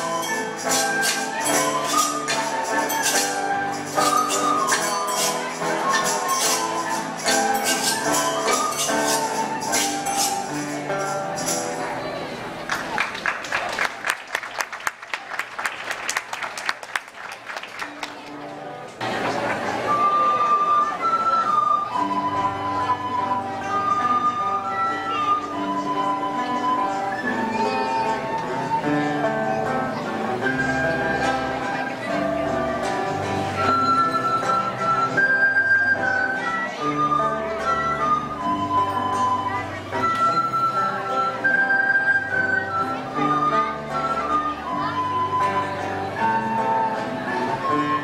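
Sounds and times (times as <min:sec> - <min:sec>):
strummed string accompaniment: 0:00.0 - 0:13.0, 0:18.0 - 0:48.0
children's ensemble playing: 0:00.0 - 0:48.0
applause: 0:12.6 - 0:19.8.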